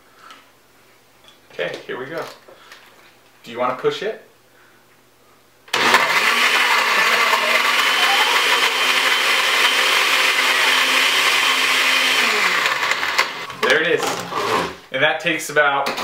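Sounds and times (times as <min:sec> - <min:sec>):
blender motor running: 0:05.7 - 0:13.5, 0:14.3 - 0:14.8.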